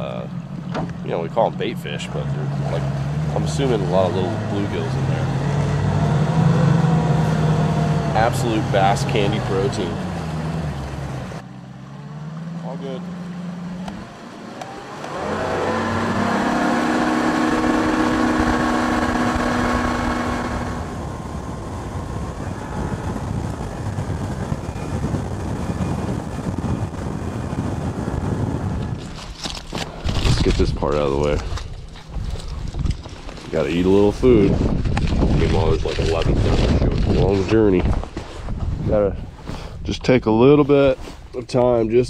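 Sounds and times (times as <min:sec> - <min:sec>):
outboard motor drone: 0:00.0 - 0:33.4.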